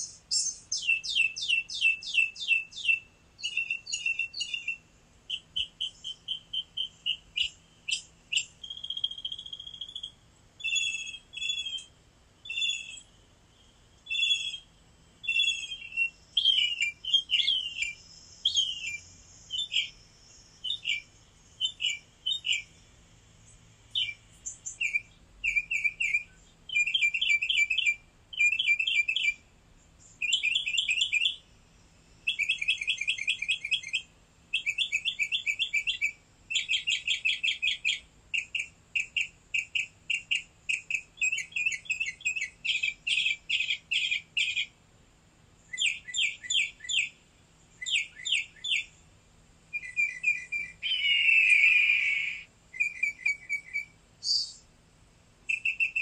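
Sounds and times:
lower bird call: 0:00.0 - 0:13.2, 0:14.0 - 0:20.0, 0:23.5 - 0:29.4, 0:47.8 - 0:49.0, 0:49.7 - 0:54.6, 0:55.5 - 0:56.0
bird chirping in rapid trills: 0:00.0 - 0:44.8, 0:45.6 - 0:54.7, 0:55.4 - 0:56.0.

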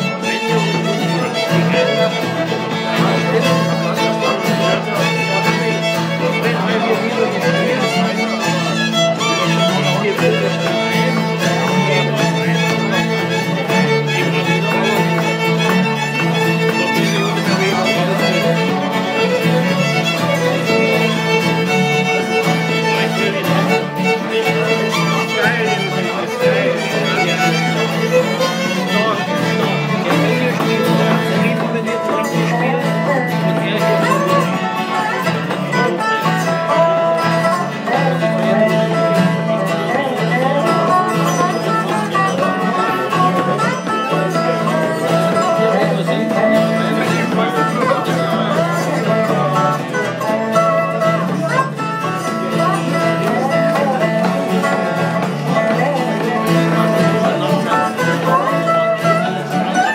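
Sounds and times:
slide resonator guitar: 0:00.0 - 0:59.9
strummed acoustic guitar: 0:00.0 - 0:59.9.

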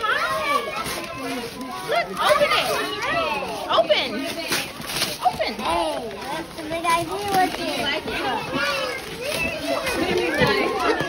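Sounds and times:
voices talking and calling: 0:00.0 - 0:11.0.

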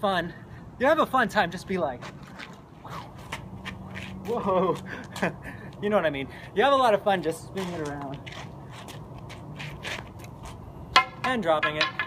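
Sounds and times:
staff clacking on asphalt: 0:07.5 - 0:12.0.

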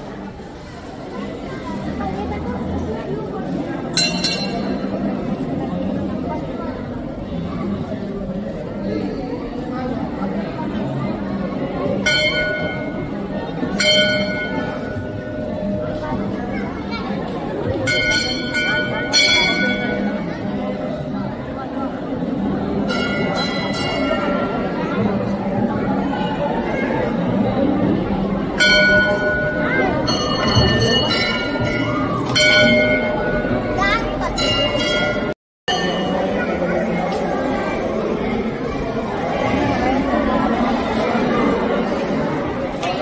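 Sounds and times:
temple bell ringing: 0:03.6 - 0:06.1, 0:11.5 - 0:38.1.

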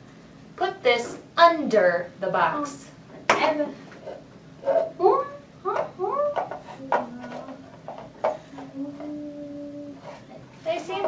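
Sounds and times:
child humming: 0:05.7 - 0:07.7, 0:08.5 - 0:10.0.

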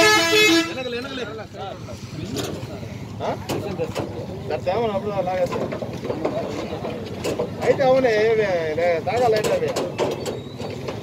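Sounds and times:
vehicle horn blare: 0:00.0 - 0:01.2
people talking: 0:00.0 - 0:10.2.

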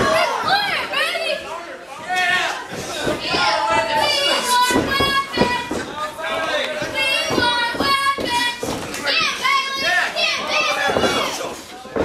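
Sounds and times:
children shouting: 0:02.1 - 0:05.8, 0:06.8 - 0:11.5.

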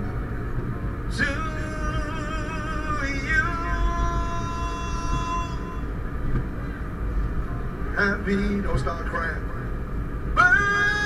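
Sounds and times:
low rumble: 0:00.0 - 0:11.0
person singing a long note: 0:01.2 - 0:05.9, 0:10.4 - 0:11.0.

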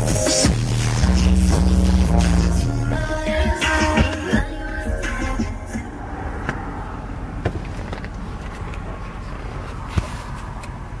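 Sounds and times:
bass-heavy car stereo music: 0:00.0 - 0:10.6
steady low rumble: 0:00.5 - 0:09.9.

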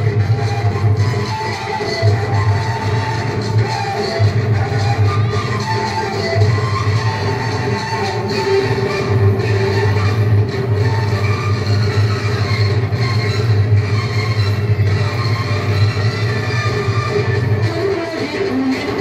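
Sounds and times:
loud dance music: 0:00.0 - 0:19.0.

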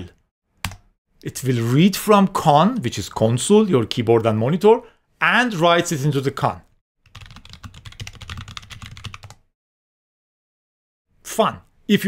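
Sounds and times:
fast typing on keyboard: 0:07.0 - 0:09.5.

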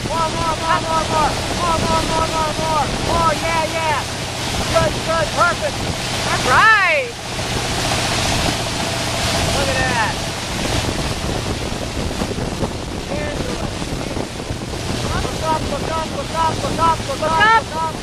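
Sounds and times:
boat engine hum: 0:00.0 - 0:18.0
water rushing along hull: 0:00.0 - 0:18.0
wind on microphone: 0:00.0 - 0:18.0.

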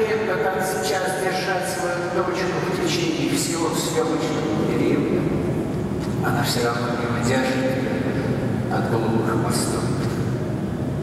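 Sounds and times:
person's voice: 0:00.0 - 0:05.4, 0:06.0 - 0:10.2.

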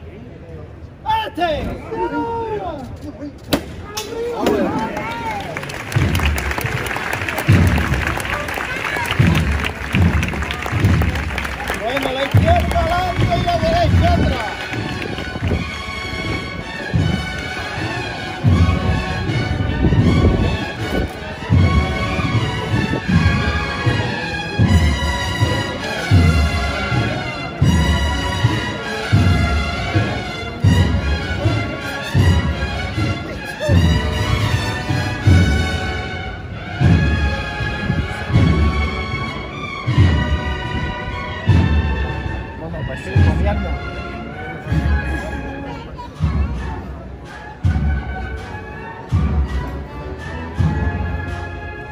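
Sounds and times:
brass band playing a march: 0:04.6 - 0:51.9
low drum beats: 0:05.8 - 0:51.9.

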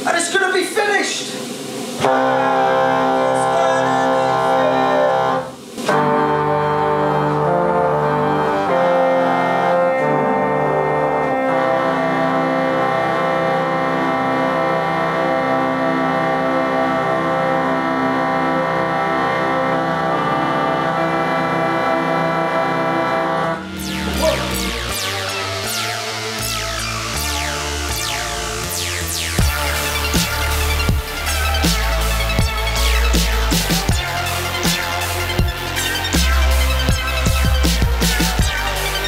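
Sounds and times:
pipe organ playing held chords: 0:01.4 - 0:39.0.

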